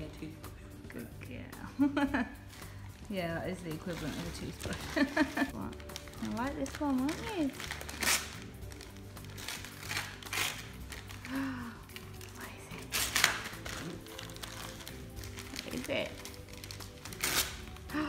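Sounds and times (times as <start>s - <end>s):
background music: 0.0s - 18.0s
wrapping paper crinkling and tearing: 2.5s - 18.0s.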